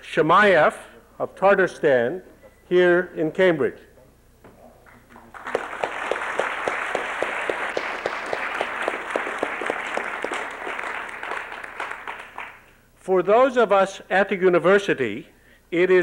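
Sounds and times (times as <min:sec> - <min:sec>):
nearby person clapping steadily: 0:04.9 - 0:12.7
audience applauding: 0:05.1 - 0:12.7.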